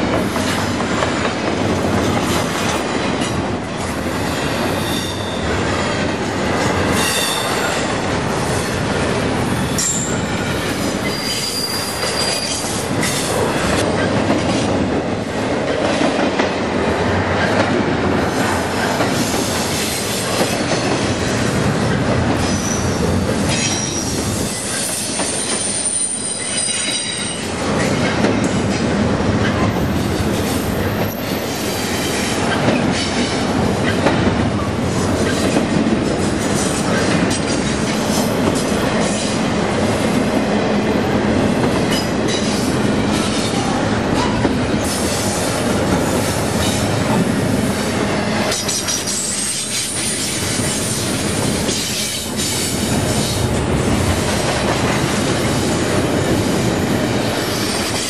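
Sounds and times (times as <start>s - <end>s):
train wheels rumbling on rail: 0.0s - 58.0s
high-pitched wheel squeals: 4.7s - 5.5s, 11.0s - 12.6s.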